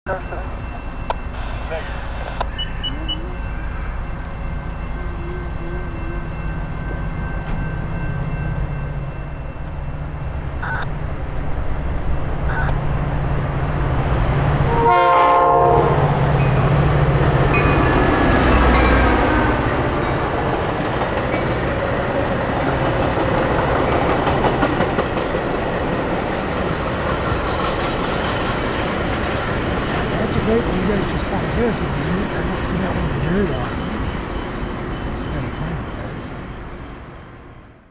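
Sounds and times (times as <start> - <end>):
diesel locomotive engine running: 0.1 - 37.8
rail and wheel noise: 0.1 - 37.9
train horn blast: 14.6 - 16.2.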